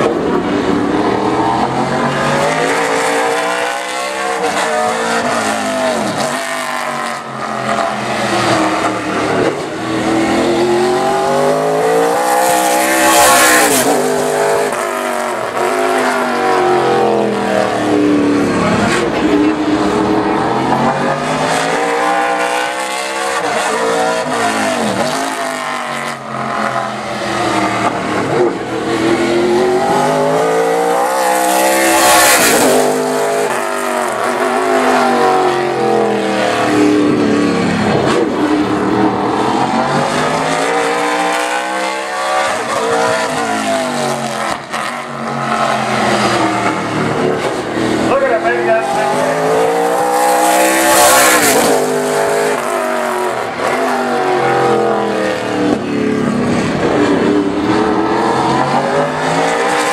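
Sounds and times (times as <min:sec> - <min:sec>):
race car engine passing: 0:00.0 - 0:59.9.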